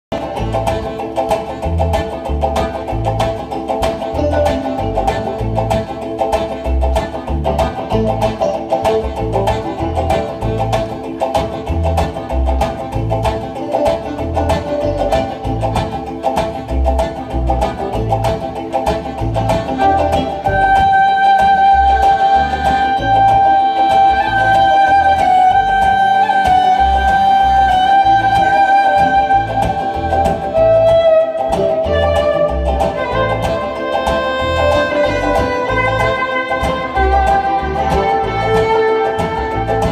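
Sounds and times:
banjo and plucked strings: 0.1s - 39.9s
fiddle playing long bowed notes: 0.1s - 39.9s
steady drum beat: 0.1s - 39.9s.

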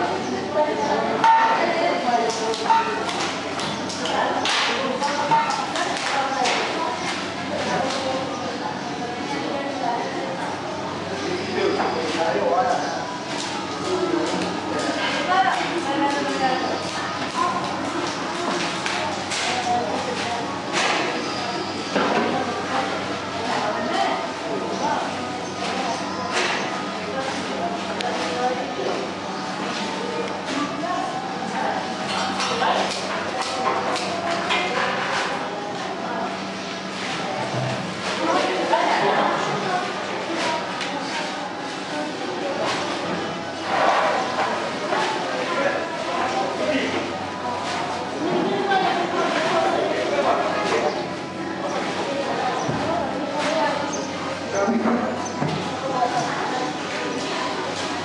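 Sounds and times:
people talking indistinctly: 0.0s - 58.0s
workers chattering: 0.0s - 58.0s.

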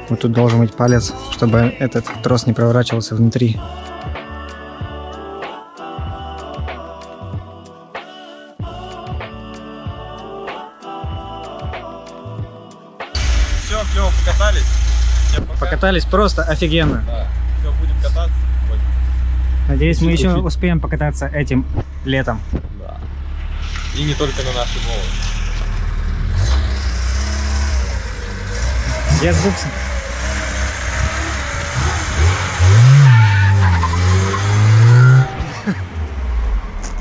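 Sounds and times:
car engine idling: 13.2s - 37.0s.

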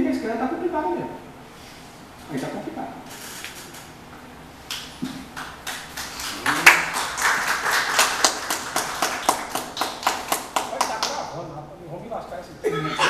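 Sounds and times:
people clapping: 4.7s - 11.4s.

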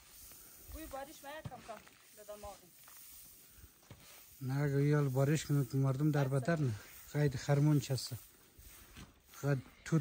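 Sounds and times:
grain shovelled across plastic tarp: 0.0s - 10.0s.

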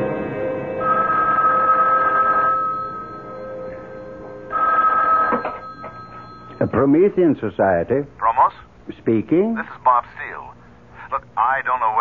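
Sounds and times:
telephone ringing: 0.8s - 7.2s.

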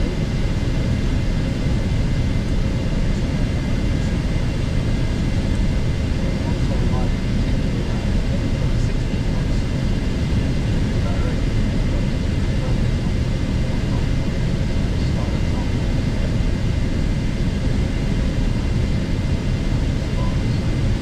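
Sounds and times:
jet airflow and engine rush: 0.0s - 21.0s.

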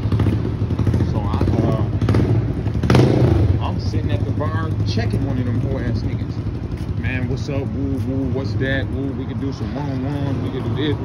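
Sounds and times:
low engine hum: 0.0s - 11.0s
people's voices: 3.6s - 11.0s.

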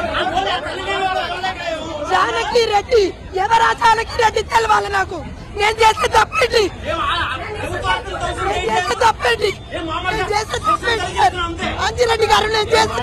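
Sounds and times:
crowd chatter: 0.0s - 13.0s
woman talking: 2.1s - 6.7s, 11.8s - 13.0s.

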